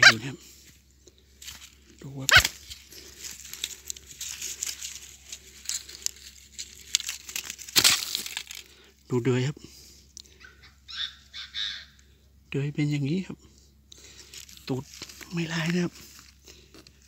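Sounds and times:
crinkling rustle of dry litter: 0.6s - 9.0s, 14.0s - 17.0s
loud crunch: 1.4s - 9.0s.

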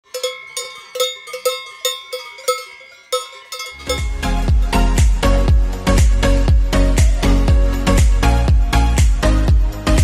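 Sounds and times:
cowbells clanging: 0.0s - 5.4s
music with heavy bass beat: 3.9s - 10.0s.

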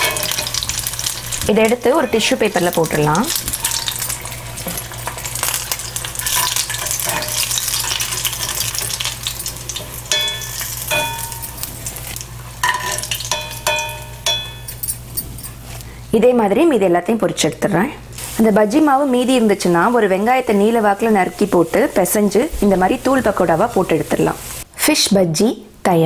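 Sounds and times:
metal spoon clinking on pan: 0.0s - 0.7s, 1.7s - 5.3s, 6.2s - 12.0s, 12.6s - 15.6s
fish deep-frying in oil: 0.0s - 14.6s.

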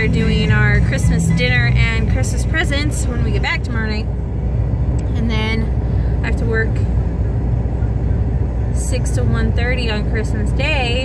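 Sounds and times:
car idling: 0.0s - 11.0s.

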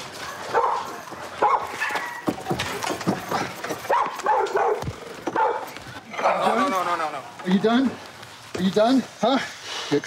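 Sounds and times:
dog barking: 0.5s - 2.3s, 3.9s - 5.8s.

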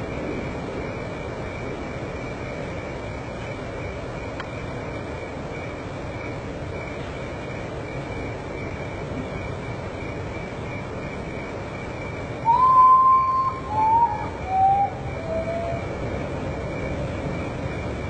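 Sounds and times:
bird whistling descending notes: 12.4s - 15.9s.

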